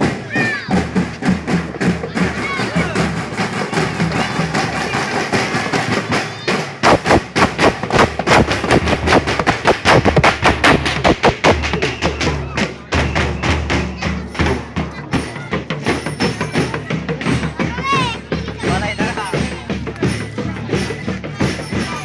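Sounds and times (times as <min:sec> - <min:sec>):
loud fast drumbeat: 0:00.0 - 0:22.0
marching drums: 0:00.0 - 0:22.0
voices: 0:00.0 - 0:22.0.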